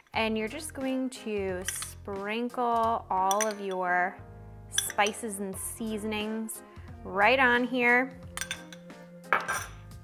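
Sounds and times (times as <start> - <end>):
soft background music: 0.0 - 10.0
metal spoon clinking glass bowl: 1.6 - 2.0, 3.2 - 4.0, 4.8 - 5.2, 8.4 - 9.8.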